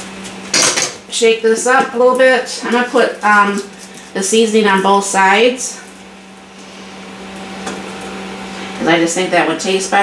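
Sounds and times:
kitchen appliance humming: 0:00.0 - 0:10.0.

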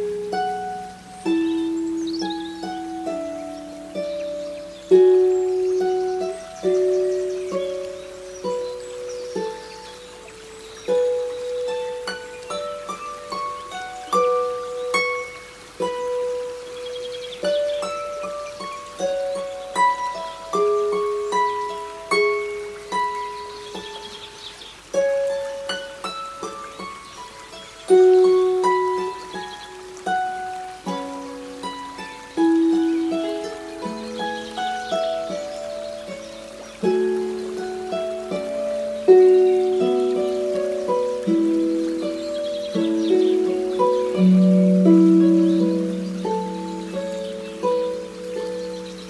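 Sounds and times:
harp melody: 0:00.0 - 0:49.0.

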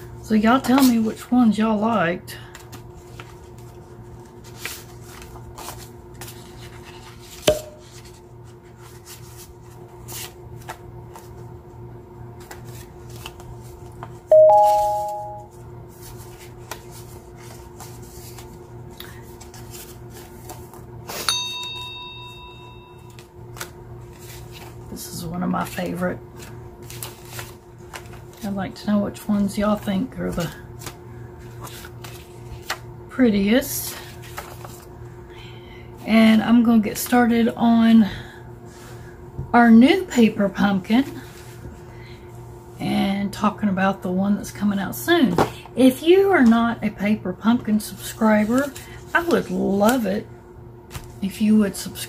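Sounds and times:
paper rustling and sliding: 0:02.5 - 0:11.4, 0:15.9 - 0:18.6, 0:23.1 - 0:24.8, 0:26.4 - 0:28.4, 0:30.8 - 0:32.8, 0:33.9 - 0:34.9
bright high chime: 0:14.3 - 0:15.5
loud two-note tone: 0:14.3 - 0:15.5.

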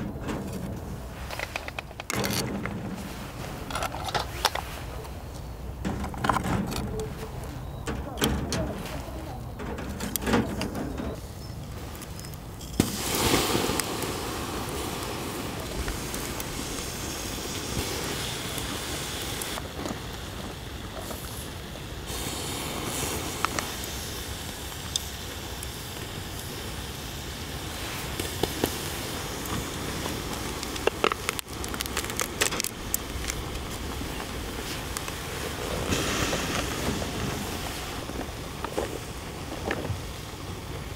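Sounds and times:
shellfish sizzling on a grill: 0:00.0 - 0:40.9
shells clicking on a grill: 0:28.0 - 0:33.8
small pops: 0:28.0 - 0:37.1.

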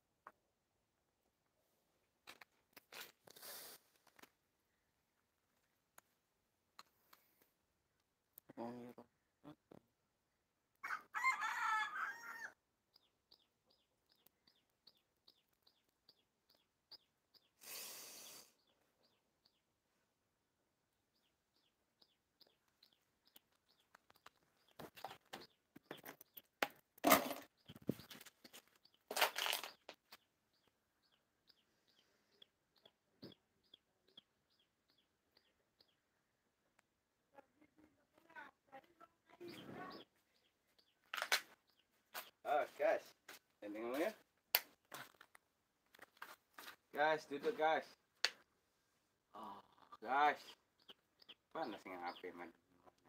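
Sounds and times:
rooster crowing: 0:10.8 - 0:12.6
small bird chirping: 0:11.5 - 0:20.0, 0:21.0 - 0:26.6, 0:27.4 - 0:44.2, 0:49.3 - 0:53.0.

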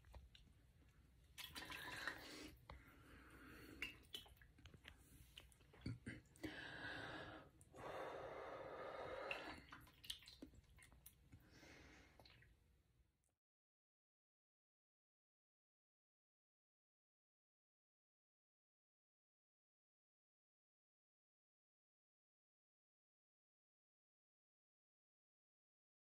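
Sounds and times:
heavy breaths: 0:06.4 - 0:09.8.

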